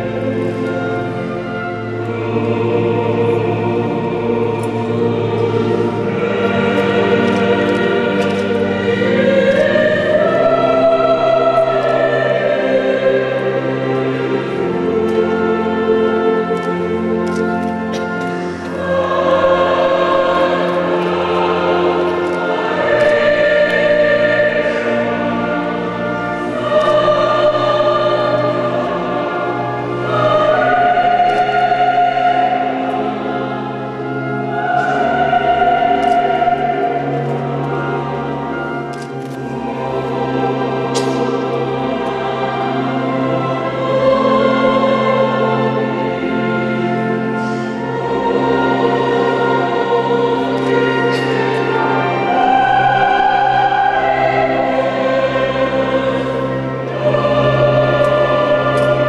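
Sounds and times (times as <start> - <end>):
choir singing sacred piece: 0.0 - 59.0.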